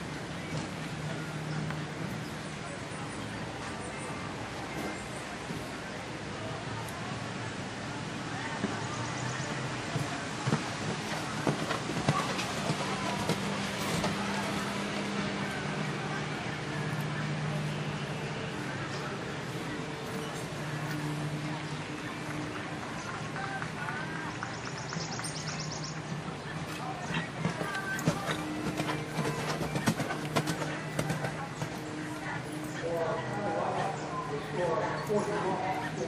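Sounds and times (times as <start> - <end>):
indistinct voices: 0.0 - 36.0
horse hoofbeats on sand: 8.6 - 16.1, 19.8 - 36.0.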